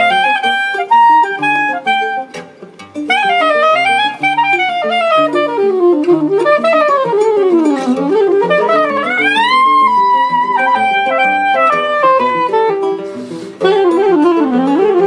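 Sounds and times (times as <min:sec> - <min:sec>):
acoustic guitar accompaniment: 0:00.0 - 0:15.0
soprano saxophone melody: 0:00.0 - 0:15.0.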